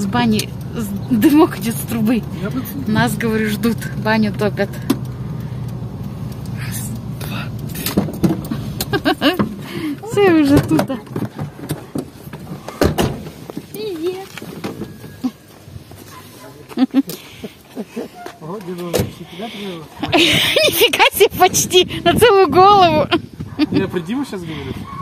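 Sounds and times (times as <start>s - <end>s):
car engine idling: 0.0s - 21.0s.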